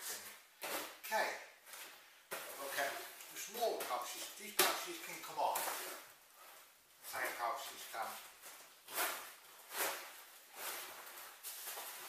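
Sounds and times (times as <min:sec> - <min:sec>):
rucksack fabric rustling: 0:01.6 - 0:12.0.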